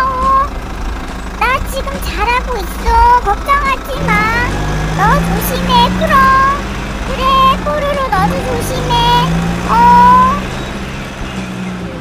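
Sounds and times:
high-pitched squeaky voice: 1.4 - 10.4.

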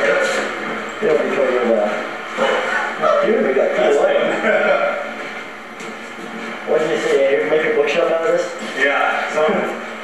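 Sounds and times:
indistinct voices talking: 0.0 - 10.0.

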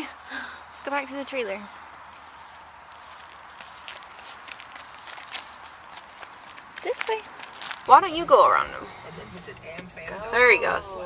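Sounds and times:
footsteps on gravel: 0.1 - 9.5.

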